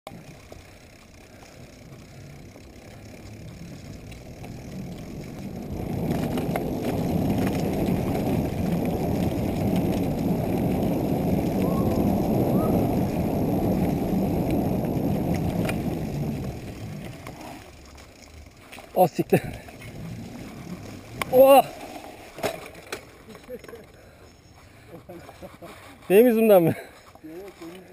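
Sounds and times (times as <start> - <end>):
bike tyres rumbling on dirt: 0.1 - 27.9
faint clicks from bumps: 0.1 - 27.9
wind buffeting microphone: 3.5 - 17.4.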